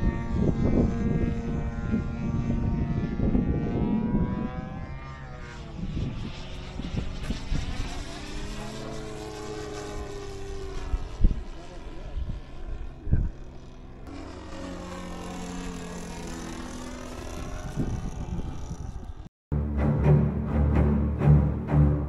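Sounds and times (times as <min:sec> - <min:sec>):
wind rumbling on microphone: 0:00.0 - 0:14.2, 0:15.2 - 0:19.3
electric jet whine: 0:00.0 - 0:19.3.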